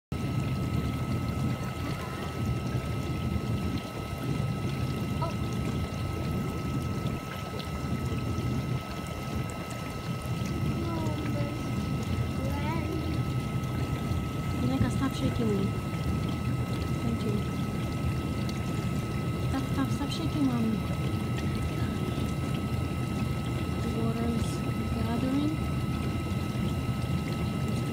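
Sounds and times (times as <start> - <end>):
dishwasher pump and water rumble: 0.1 - 27.9
thin steady whine: 0.1 - 27.9.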